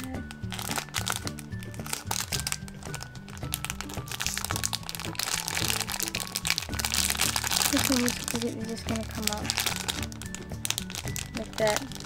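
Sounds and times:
background music: 0.0 - 12.0
plastic packaging crinkling: 0.0 - 12.0.

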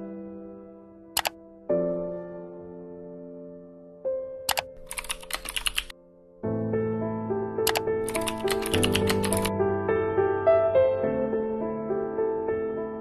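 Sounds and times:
gentle music: 0.0 - 13.0
computer keyboard typing: 1.2 - 1.4, 4.5 - 5.9, 7.7 - 9.5.

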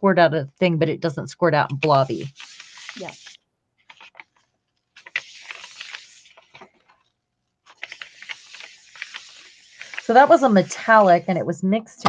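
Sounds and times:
hands rubbing paper: 1.7 - 11.4.

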